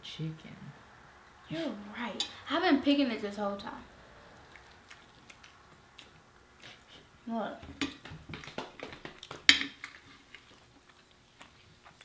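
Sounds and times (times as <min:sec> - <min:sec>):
crunchy chicken being chewed: 0:04.4 - 0:07.1, 0:09.9 - 0:12.0.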